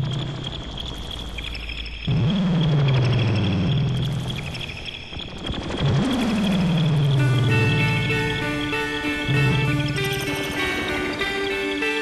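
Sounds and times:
faintly pulsing high tone: 6.2s - 12.0s.

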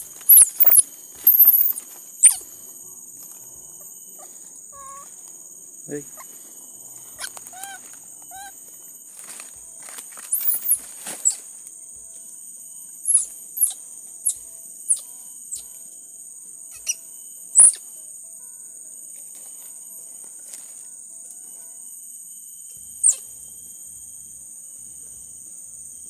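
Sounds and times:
baby monkey whimpering: 0.0s - 2.5s, 4.2s - 5.1s, 7.2s - 8.6s, 13.0s - 15.6s, 16.7s - 17.0s, 17.6s - 17.8s, 23.0s - 23.2s
short sharp high squeaks: 0.0s - 2.5s, 10.3s - 11.4s, 13.1s - 15.7s, 17.6s - 17.9s
high insect drone: 0.0s - 26.0s
dry leaves rustling: 6.2s - 11.6s.

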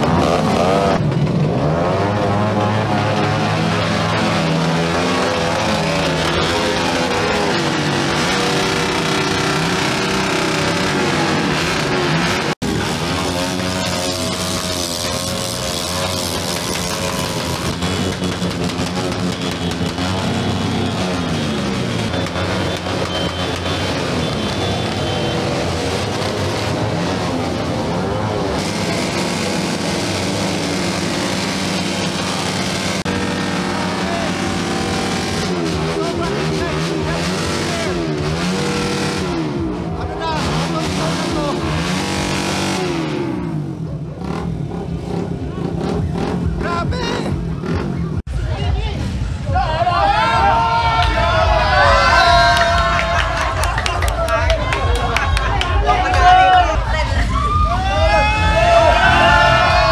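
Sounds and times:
motorcycle engines revving: 0.0s - 59.9s
music playing: 48.3s - 59.9s.

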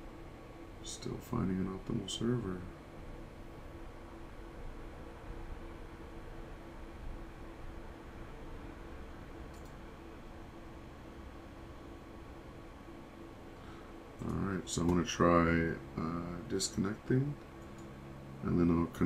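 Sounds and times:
low electrical hum: 0.0s - 19.0s
mouse click: 9.5s - 9.8s.

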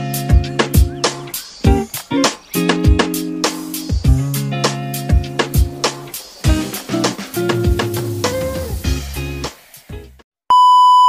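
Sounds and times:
background music: 0.0s - 10.2s.

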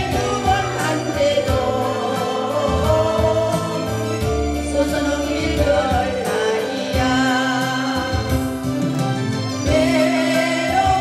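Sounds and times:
woman singing into microphone: 0.0s - 8.9s, 9.6s - 11.0s
backing track with bass line: 0.0s - 11.0s.

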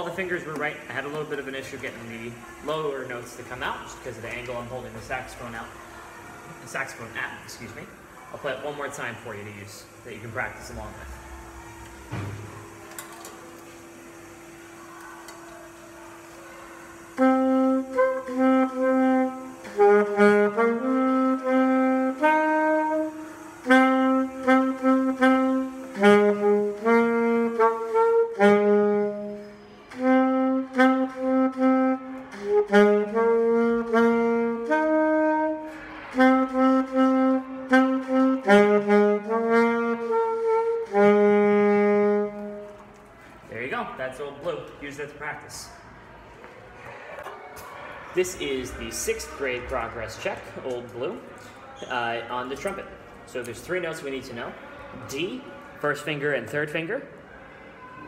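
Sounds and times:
saxophone slow melody: 9.2s - 43.5s.

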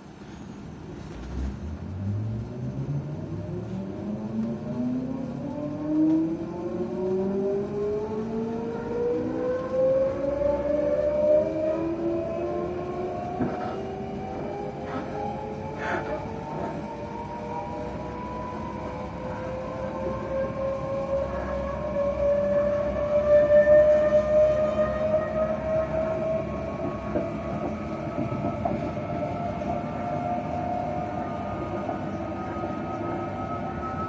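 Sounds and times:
train rumble: 0.0s - 34.0s
train traction motors whining: 1.7s - 34.0s.

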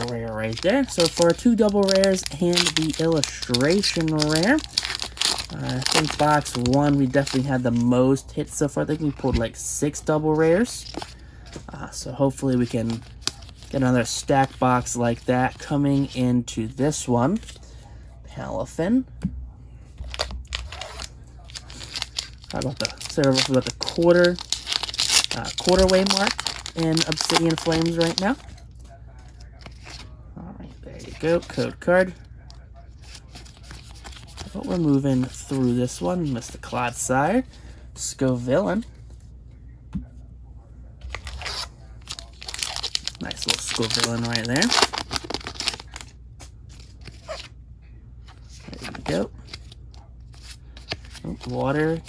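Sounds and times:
foil wrapper crinkling: 0.0s - 7.8s, 20.1s - 28.6s, 41.1s - 47.5s.

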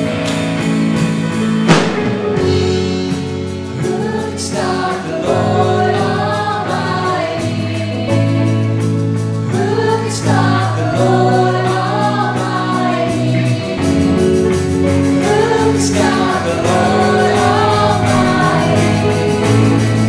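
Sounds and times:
drum kit: 0.0s - 20.0s
piano: 0.0s - 20.0s
electric bass long notes: 1.5s - 4.2s, 13.1s - 20.0s
backing vocals: 15.3s - 19.8s
man singing lead vocals: 15.4s - 19.4s.

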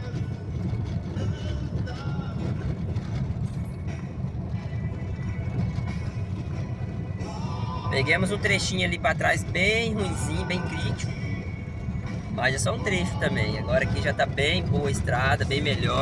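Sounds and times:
car driving on dirt road: 0.0s - 16.0s.

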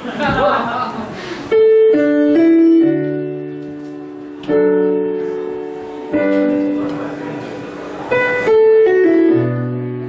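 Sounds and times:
piano chords: 1.2s - 10.0s.

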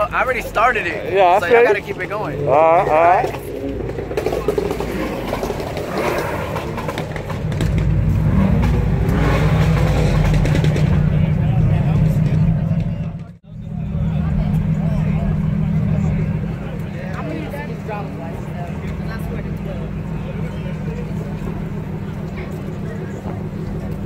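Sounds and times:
car engine idling: 0.0s - 24.0s.

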